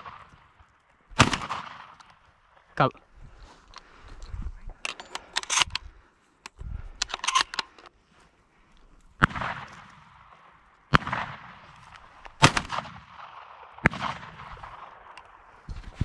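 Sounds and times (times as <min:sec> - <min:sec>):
shotgun shots with echo: 0:01.2 - 0:02.0, 0:09.2 - 0:10.3, 0:10.9 - 0:11.6, 0:12.4 - 0:15.0.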